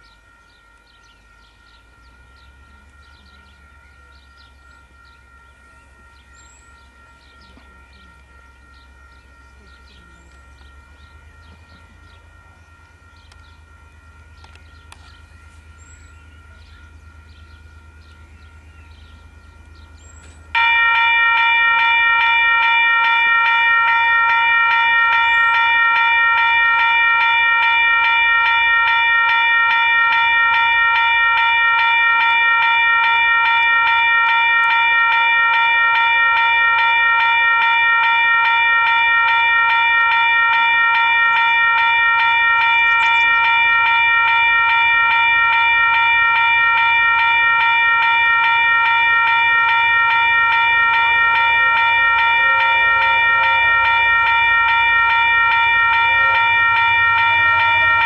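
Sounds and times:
level crossing warning bell: 0.0s - 58.0s
low train rumble: 0.0s - 58.0s.

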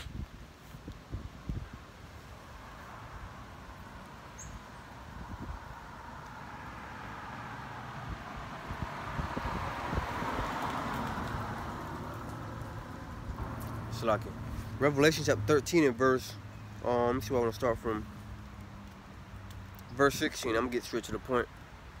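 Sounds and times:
car passing road noise: 1.9s - 22.0s.

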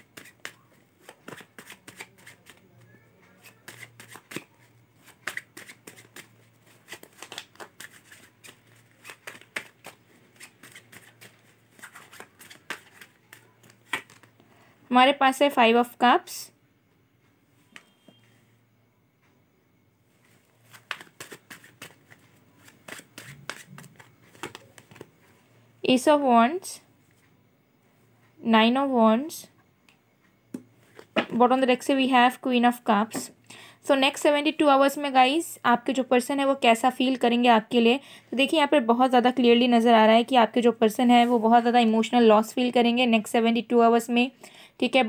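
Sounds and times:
cards being shuffled by hand: 0.0s - 14.4s, 20.3s - 25.3s.

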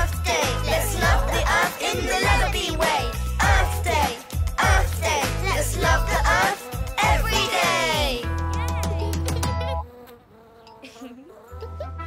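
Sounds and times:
cartoon bee buzzing: 0.0s - 12.0s.

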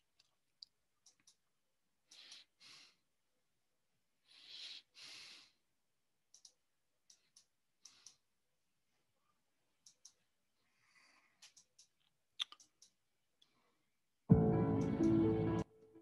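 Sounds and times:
faint scattered clicks: 0.2s - 1.4s, 6.3s - 8.2s, 9.8s - 10.2s, 11.4s - 13.0s.

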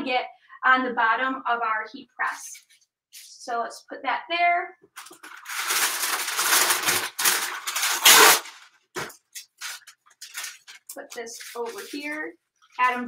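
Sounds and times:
paper rustling and crinkling: 5.0s - 13.0s.

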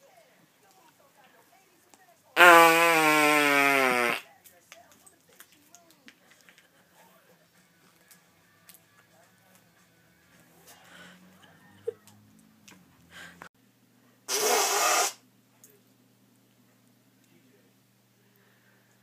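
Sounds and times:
man making fake fart noise: 2.4s - 4.3s, 14.3s - 15.2s.

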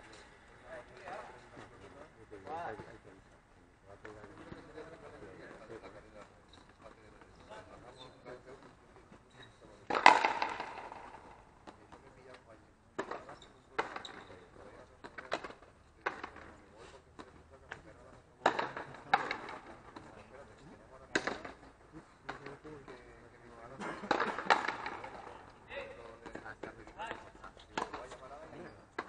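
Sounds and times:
ball hitting wall: 9.9s - 11.8s
rubber ball smacked by rackets: 9.9s - 11.8s.

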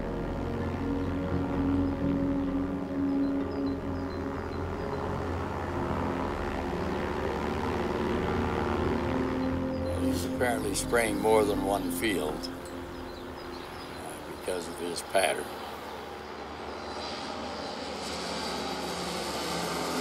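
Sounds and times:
propeller airplane droning: 0.0s - 20.0s.

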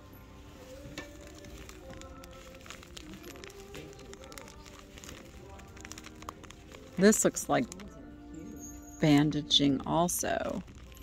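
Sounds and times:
faint background music: 0.0s - 11.0s
plastic packaging crinkling: 0.4s - 9.2s, 10.0s - 11.0s.

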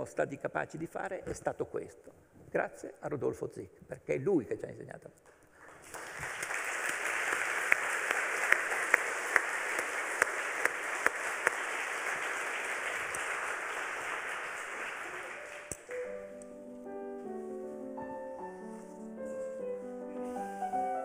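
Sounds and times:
audience applause: 5.6s - 16.2s.

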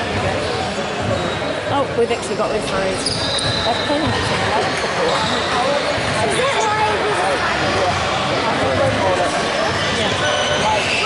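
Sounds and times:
indistinct chatter echoing: 0.0s - 11.0s.

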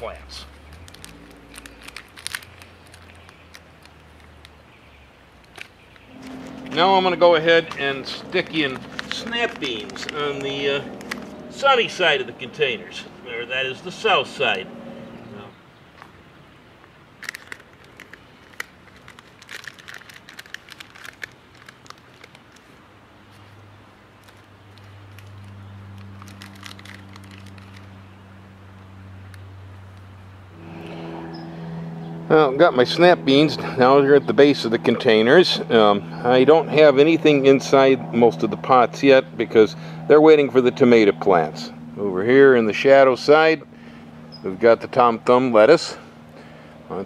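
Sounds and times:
plastic seedling pack crackling: 0.0s - 4.6s, 5.4s - 11.6s, 17.2s - 23.6s, 24.2s - 28.0s
rustling and clicks of planting: 0.0s - 4.7s, 5.3s - 11.7s, 16.8s - 28.1s.

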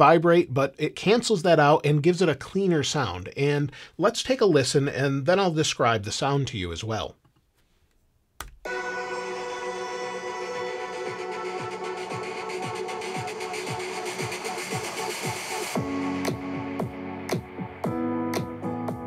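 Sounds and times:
electronic music with steady beat: 8.6s - 19.0s.

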